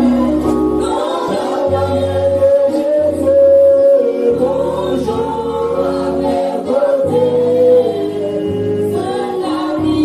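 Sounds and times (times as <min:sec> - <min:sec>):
congregation singing worship song: 0:00.0 - 0:10.0
worship leader singing into microphone: 0:00.0 - 0:10.0.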